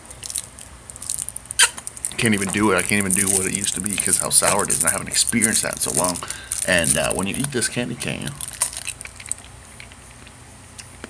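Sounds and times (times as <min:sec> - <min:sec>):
candy crunch: 0:00.0 - 0:11.0
man chewing hard candy: 0:00.0 - 0:11.0.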